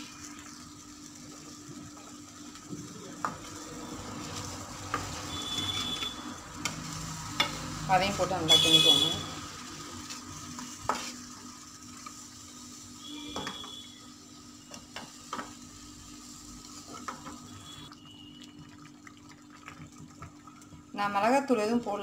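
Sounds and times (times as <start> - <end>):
paste sizzling in pan: 0.0 - 18.8
wooden spatula stirring: 10.0 - 11.4
water pouring into pan: 17.5 - 21.0.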